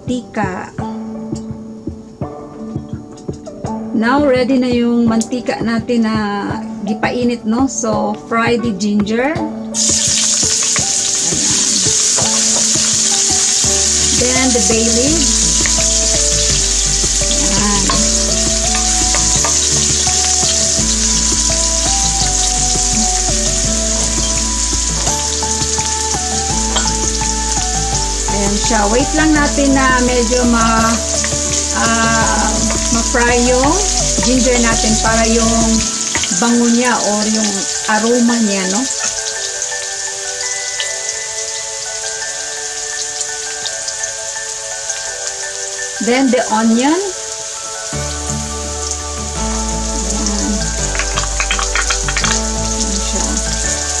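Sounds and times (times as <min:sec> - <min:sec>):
soft background music: 0:00.0 - 0:54.0
food sizzling in hot oil: 0:09.7 - 0:54.0.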